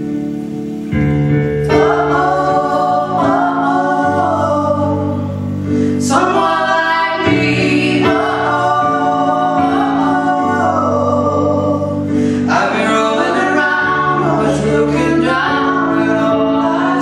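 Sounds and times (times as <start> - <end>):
grand piano chords: 0.0 - 17.0
woman singing a slow ballad: 1.7 - 17.0.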